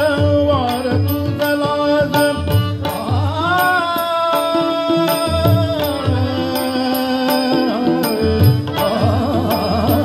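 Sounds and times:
harmonium holding chords: 0.0 - 10.0
tabla playing a rhythm: 0.0 - 10.0.

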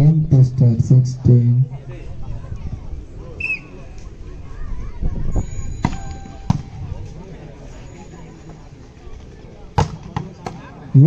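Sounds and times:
murmur of spectators: 0.0 - 11.0.

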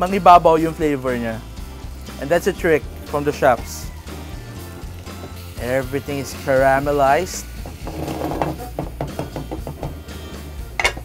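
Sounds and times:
wood knocking and scraping pan: 7.6 - 10.2, 10.8 - 11.0.

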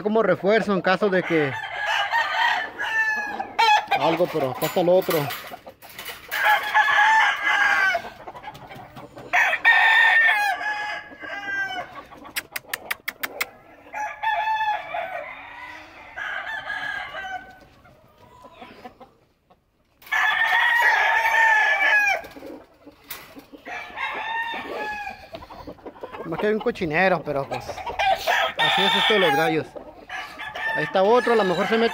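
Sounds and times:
roosters crowing: 0.2 - 19.1, 20.0 - 31.9.

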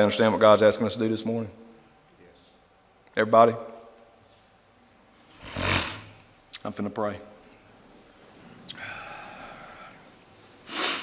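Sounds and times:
breath into a microphone: 8.7 - 10.0.

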